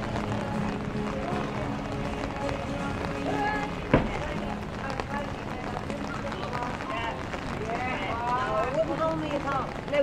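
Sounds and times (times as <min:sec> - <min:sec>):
people talking on street: 0:00.0 - 0:10.0
footsteps: 0:01.6 - 0:06.0.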